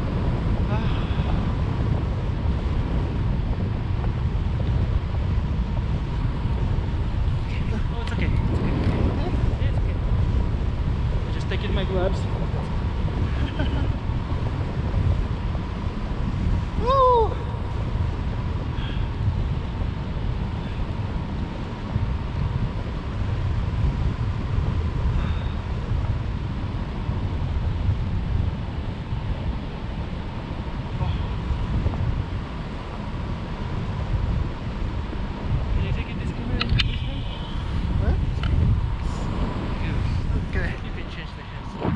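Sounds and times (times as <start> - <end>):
wind buffeting microphone: 0.0 - 41.9
person crying out: 16.8 - 17.5.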